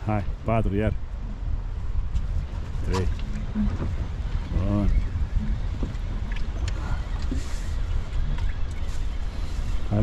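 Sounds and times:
boat rumble: 0.0s - 10.0s.

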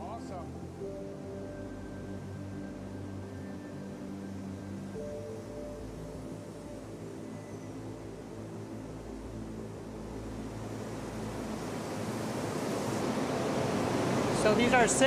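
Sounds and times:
faint music: 0.0s - 15.0s
rushing hiss of air: 10.5s - 15.0s.

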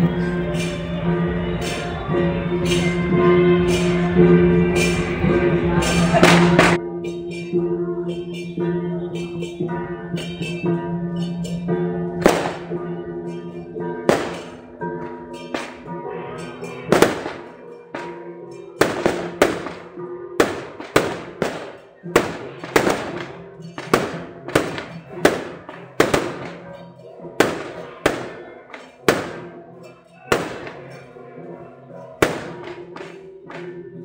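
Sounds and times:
firecrackers banging: 0.0s - 6.8s, 11.2s - 31.2s, 32.2s - 33.8s
music with held tones: 0.0s - 34.0s.

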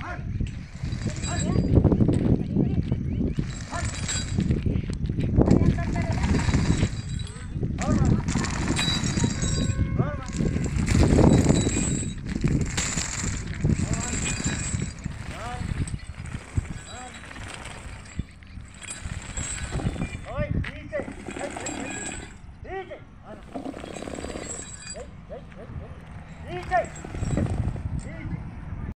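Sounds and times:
outdoor background noise: 0.0s - 29.0s.

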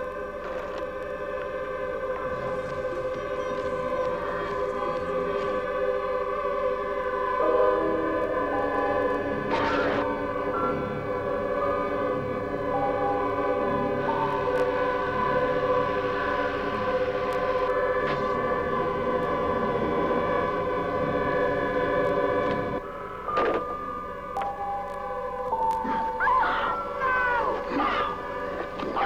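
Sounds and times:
horror film score wailing chords: 0.0s - 29.0s.

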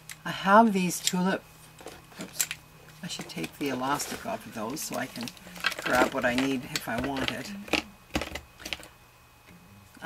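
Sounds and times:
plastic marker barrels clicking: 5.2s - 8.9s.

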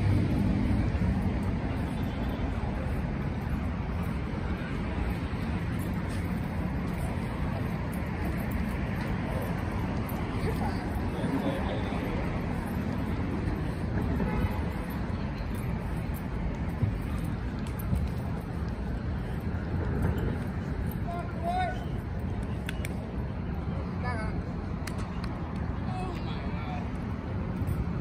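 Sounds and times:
traffic rumble: 0.0s - 28.0s
people talking nearby: 9.1s - 27.3s.

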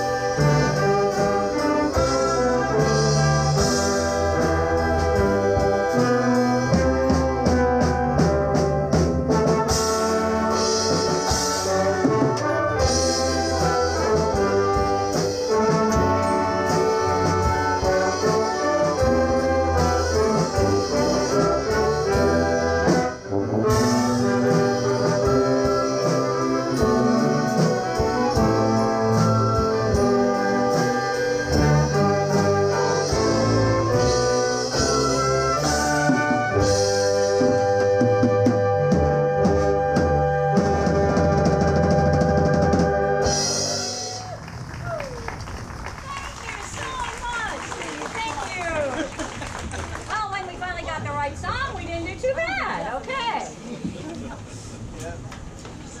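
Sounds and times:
orchestra playing: 0.0s - 48.8s
brass instruments: 0.0s - 53.6s.

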